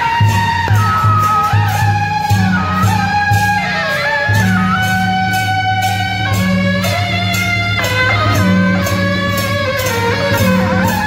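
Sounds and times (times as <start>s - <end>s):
brass marching band: 0.0s - 11.0s
percussion beat: 0.0s - 11.0s.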